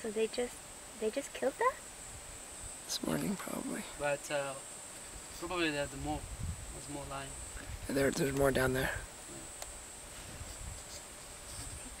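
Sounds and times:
insect buzz: 0.0 - 12.0.

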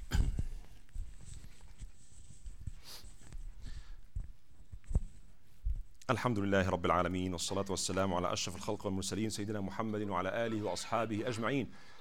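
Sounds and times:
low thuds and rustling: 0.0 - 1.5.

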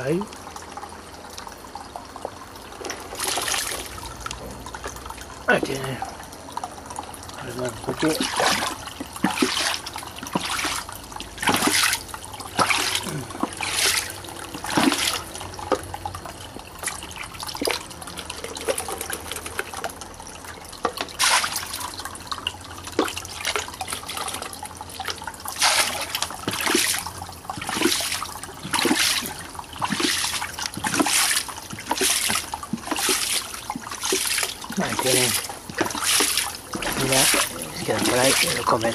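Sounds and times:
water splashing in fish tank: 0.0 - 38.9.

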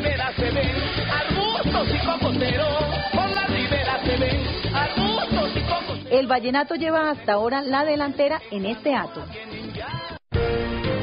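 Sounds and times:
upbeat song with singing: 0.0 - 11.0.

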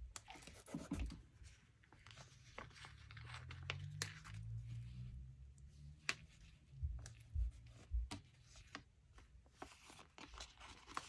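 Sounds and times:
paper sticker sheet rustling: 0.2 - 5.1, 5.9 - 11.0.

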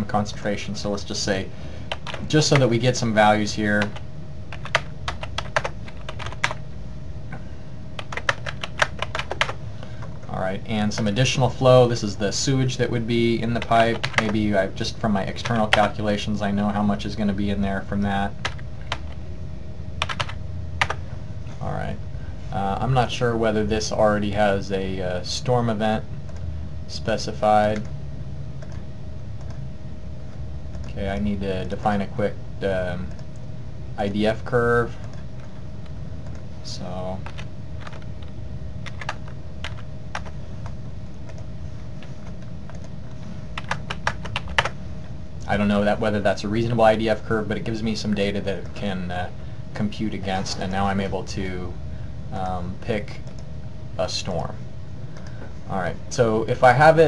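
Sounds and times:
steady low hum: 0.0 - 57.0
computer keyboard typing: 1.9 - 2.7, 3.8 - 6.6, 8.0 - 10.3, 13.5 - 14.5, 15.4 - 15.9, 18.0 - 19.2, 20.0 - 21.0, 37.2 - 43.0, 43.6 - 44.8.

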